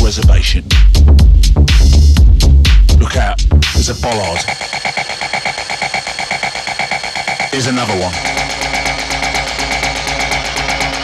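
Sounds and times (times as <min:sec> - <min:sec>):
rapid alarm-like synth beep: 0:04.1 - 0:11.0.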